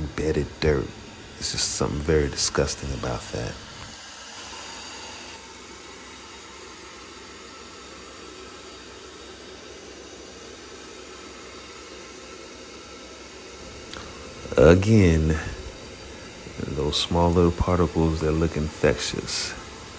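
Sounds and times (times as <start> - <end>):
steady hiss: 0.0 - 5.5, 11.0 - 19.9.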